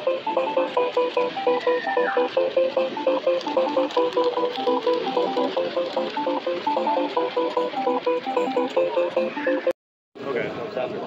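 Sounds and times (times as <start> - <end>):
music with fast clipped melody: 0.0 - 9.8.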